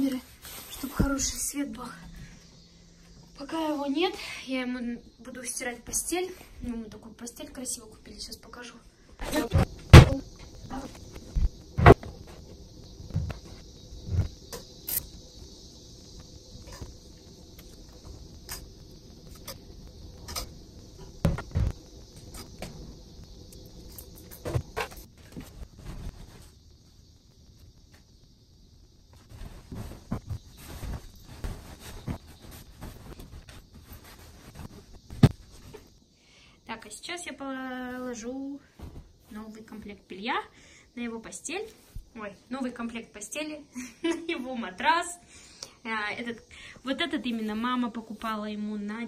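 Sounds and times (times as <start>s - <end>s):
faint steady hiss: 0.0s - 49.0s.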